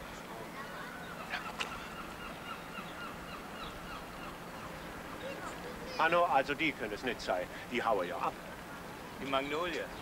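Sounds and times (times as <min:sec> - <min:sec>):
faint bird calls: 0:00.5 - 0:06.1.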